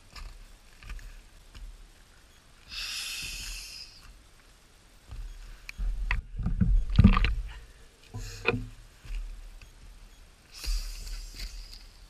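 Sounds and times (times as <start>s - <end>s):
footsteps on loose rocks: 0.0s - 2.1s, 5.0s - 12.0s
wind rumbling on microphone: 5.8s - 8.8s.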